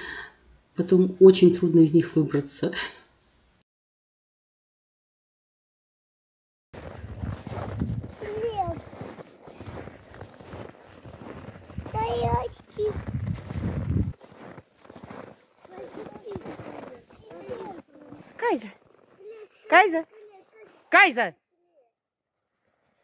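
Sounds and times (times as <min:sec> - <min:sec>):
footsteps crunching through snow: 0:06.8 - 0:20.8.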